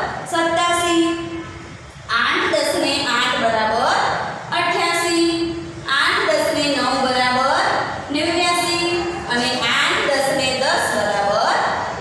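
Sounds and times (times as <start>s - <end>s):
woman reading aloud: 0.0s - 1.4s, 2.1s - 11.8s.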